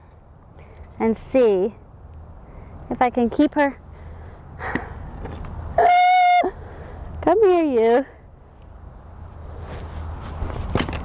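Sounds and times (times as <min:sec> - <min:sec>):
rustling scuffle: 0:09.3 - 0:11.0.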